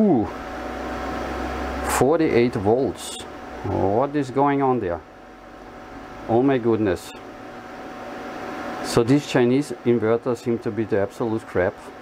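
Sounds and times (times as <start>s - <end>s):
cooling fan hiss and hum: 0.0s - 12.0s.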